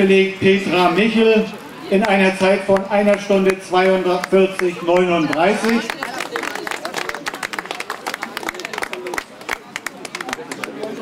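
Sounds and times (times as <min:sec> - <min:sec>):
voices talking: 0:00.0 - 0:09.2
crowd applauding: 0:02.0 - 0:11.0.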